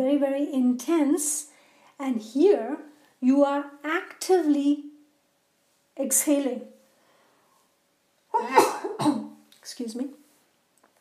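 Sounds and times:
woman coughing: 8.4s - 9.4s.

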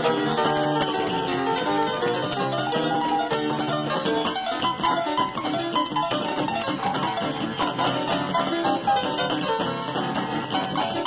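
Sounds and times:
jazz piano: 0.0s - 11.0s.

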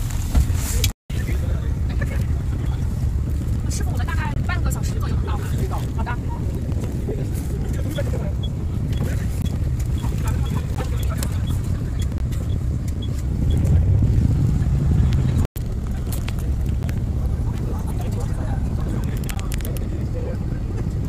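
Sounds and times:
bus engine and road noise: 0.0s - 21.0s.

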